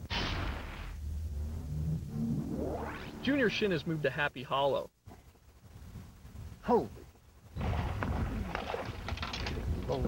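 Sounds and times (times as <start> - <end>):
burst of noise: 0.0 - 3.8
low steady rumble: 0.0 - 10.0.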